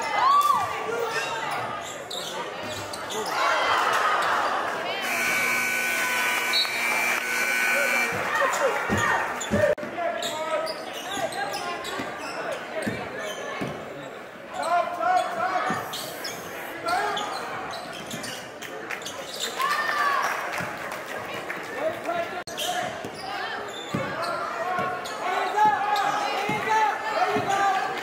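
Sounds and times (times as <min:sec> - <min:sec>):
spectators' voices echoing: 0:00.0 - 0:17.8
sneakers squeaking: 0:01.1 - 0:03.4, 0:05.0 - 0:19.5, 0:22.6 - 0:26.6.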